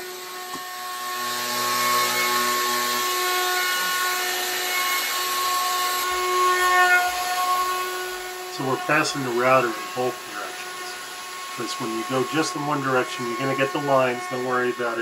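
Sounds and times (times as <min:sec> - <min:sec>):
router cutting wood: 0:00.0 - 0:15.0
router motor whine: 0:00.0 - 0:15.0.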